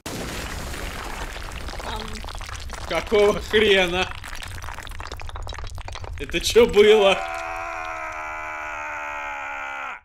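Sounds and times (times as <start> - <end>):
man screaming while falling: 7.0 - 10.0.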